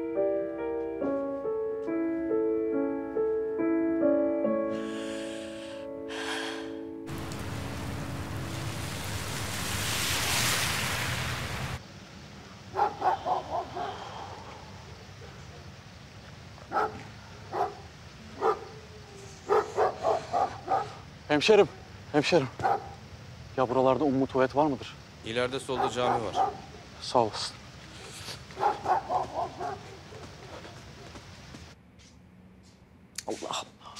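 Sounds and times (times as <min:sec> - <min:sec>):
soft piano music: 0:00.0 - 0:10.3
rushing noise: 0:04.8 - 0:11.8
dog barking: 0:12.7 - 0:15.6, 0:16.7 - 0:18.8, 0:19.4 - 0:21.0, 0:22.6 - 0:23.0, 0:25.7 - 0:26.8, 0:28.5 - 0:30.6.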